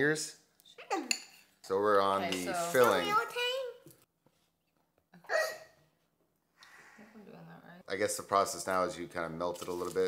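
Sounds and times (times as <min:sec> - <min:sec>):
child hiccup-like vocal sound: 0:05.2 - 0:05.8.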